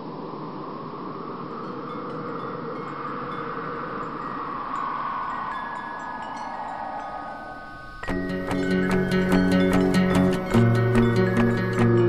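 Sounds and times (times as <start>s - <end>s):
tinkling chime tones: 1.5s - 12.0s.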